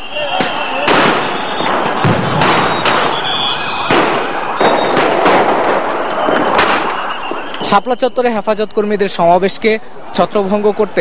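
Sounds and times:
continuous noisy din: 0:00.0 - 0:11.0
gunfire and grenade bangs: 0:00.4 - 0:07.3.

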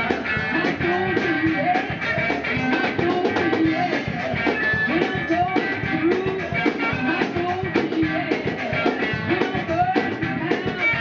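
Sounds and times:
drum kit beat: 0:00.0 - 0:11.0
electric lead guitar: 0:00.0 - 0:11.0
keyboard: 0:00.0 - 0:11.0.

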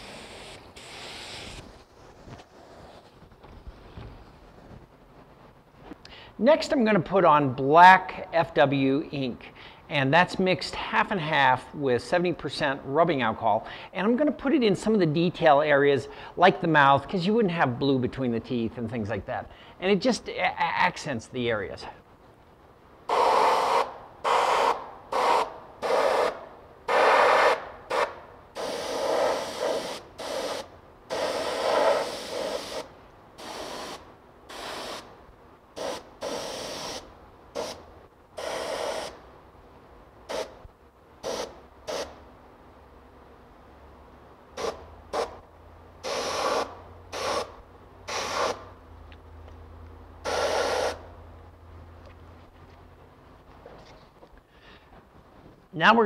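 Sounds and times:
airbrush hissing bursts: 0:00.0 - 0:01.8, 0:23.1 - 0:35.2, 0:35.8 - 0:37.8, 0:38.4 - 0:39.2, 0:40.3 - 0:40.6, 0:41.2 - 0:42.2, 0:44.6 - 0:45.4, 0:46.0 - 0:48.7, 0:50.2 - 0:51.1.

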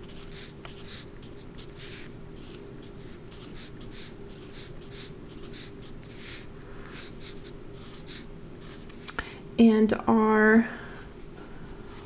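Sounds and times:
marker scratching on paper: 0:00.0 - 0:09.0.

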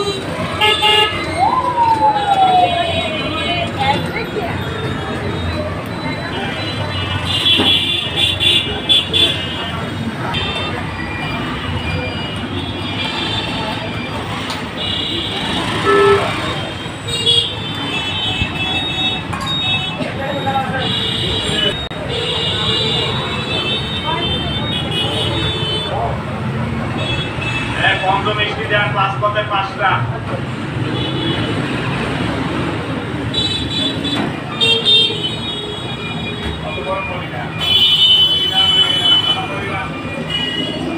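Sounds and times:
vehicle horns tooting: 0:00.0 - 0:01.3, 0:04.6 - 0:26.1, 0:26.9 - 0:28.4, 0:30.8 - 0:32.1, 0:33.3 - 0:40.9
busy street traffic: 0:00.0 - 0:40.9.

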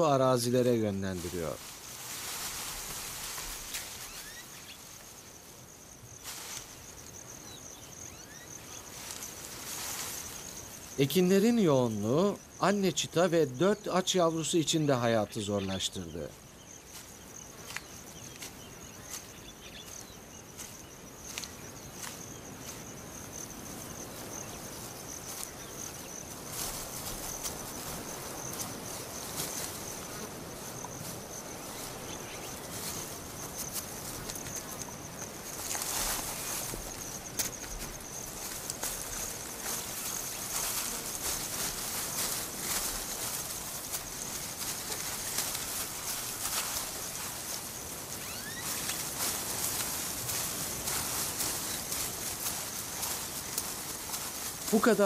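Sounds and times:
high-pitched insect trill: 0:00.0 - 0:55.0
scattered rustles and clicks: 0:01.2 - 0:05.2, 0:24.8 - 0:55.0.

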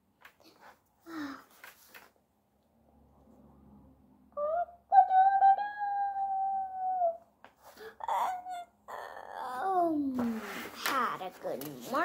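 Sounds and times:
girl's high-pitched voice: 0:04.4 - 0:07.2, 0:07.8 - 0:12.0
girl yawning: 0:07.8 - 0:09.7.

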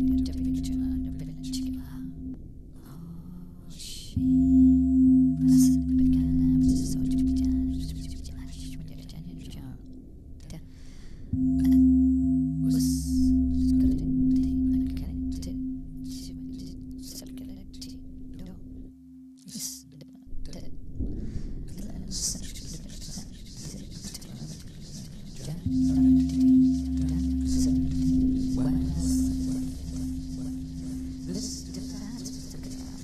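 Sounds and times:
low ringing drone: 0:00.0 - 0:10.6, 0:11.3 - 0:19.5, 0:25.4 - 0:33.0.

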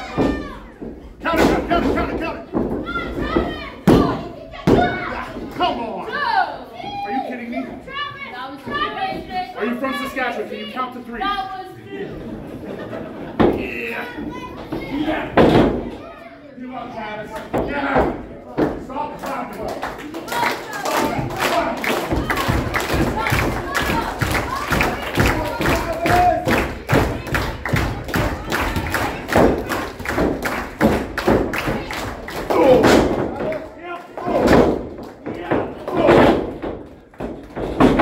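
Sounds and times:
rhythmic thumps and claps: 0:17.5 - 0:38.0.

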